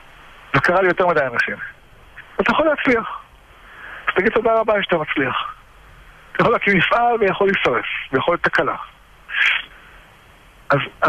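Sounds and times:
man speaking: 0.5 - 3.3, 4.1 - 5.6, 6.3 - 9.7, 10.7 - 11.0
short hiss-like noise: 9.2 - 10.5.

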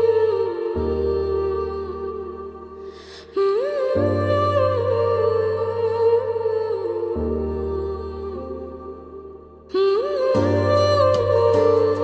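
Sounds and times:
wordless hummed melody: 9.7 - 12.0.

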